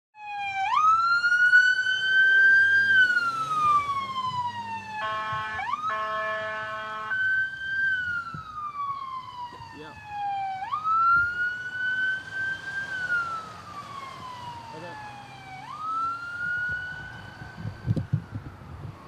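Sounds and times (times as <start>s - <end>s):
siren wailing: 0.2s - 19.0s
blaring horn: 5.0s - 7.3s.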